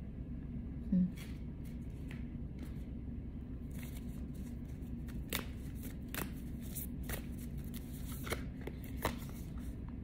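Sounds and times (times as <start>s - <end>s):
low steady hum: 0.0s - 10.0s
cards being shuffled: 3.6s - 9.8s
sharp card snaps: 5.1s - 6.4s.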